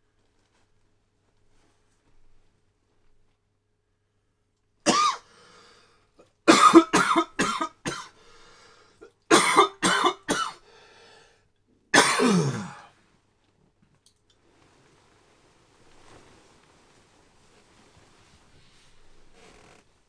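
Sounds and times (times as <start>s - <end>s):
person coughing: 4.9s - 5.3s, 6.2s - 8.2s, 9.0s - 10.6s, 12.0s - 12.9s.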